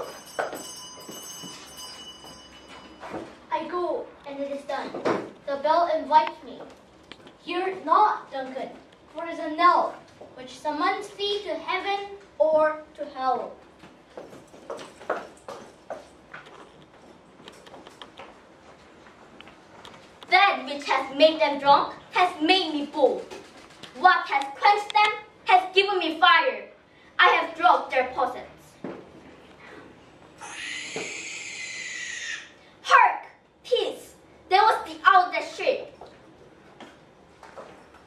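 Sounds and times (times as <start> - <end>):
owl screech: 30.4 - 32.6.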